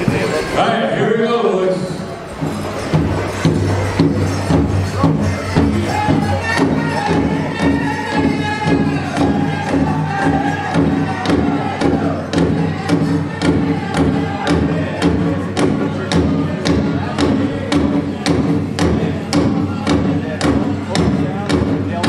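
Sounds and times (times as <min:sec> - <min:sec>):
big drum steady fast beat: 0:02.2 - 0:22.0
high-pitched group singing: 0:03.5 - 0:21.3.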